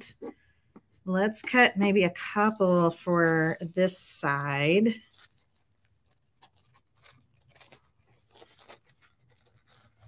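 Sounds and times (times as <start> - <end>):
light paper handling: 0.3 - 10.0
scissors snipping paper: 4.9 - 10.0.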